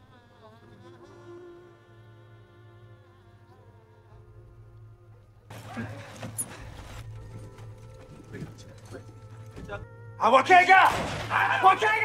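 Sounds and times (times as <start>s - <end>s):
low sustained music score: 0.6s - 10.8s.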